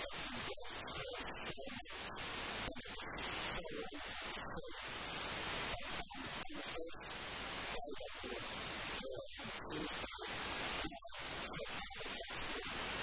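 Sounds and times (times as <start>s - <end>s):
static hiss: 0.0s - 13.0s.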